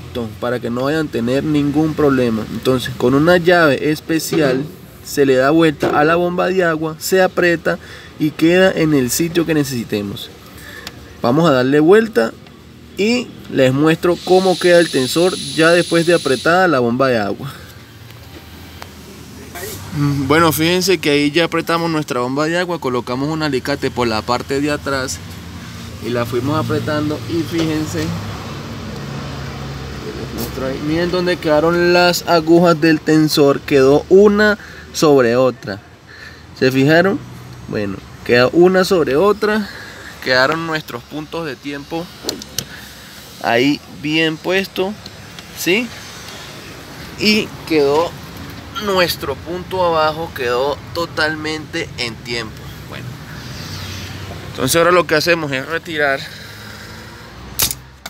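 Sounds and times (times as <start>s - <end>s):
low steady hiss: 0.1s - 18.1s.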